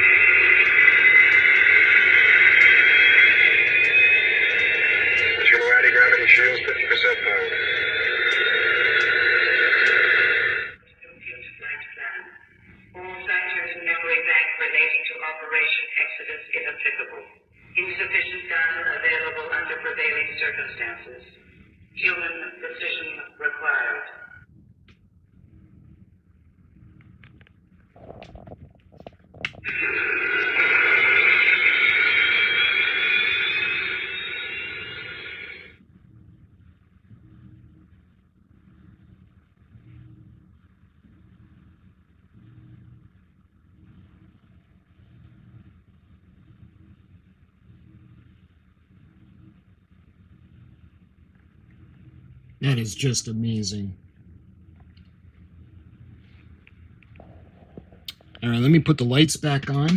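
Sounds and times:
rocket engine noise with rising whine: 0.0s - 10.8s, 29.7s - 35.8s
faint low pulsing hum: 0.0s - 59.2s.

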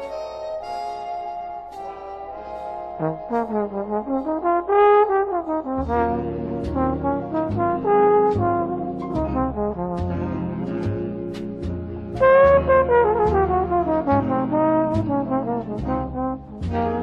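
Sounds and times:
solo trombone ballad melody: 0.0s - 17.0s
string bass: 0.0s - 17.0s
sustained brass and reed chords: 0.0s - 17.0s
drums: 5.8s - 14.3s, 14.9s - 17.0s.

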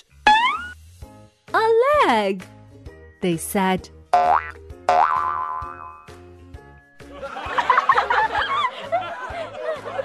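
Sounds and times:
light background music: 0.0s - 10.0s
cartoon boing: 0.2s - 0.8s, 4.2s - 6.1s.

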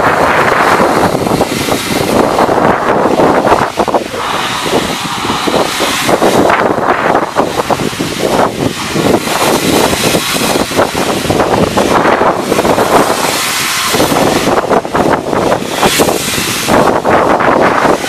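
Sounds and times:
steam locomotive hissing: 0.0s - 18.0s
train rolling past: 0.0s - 18.0s.

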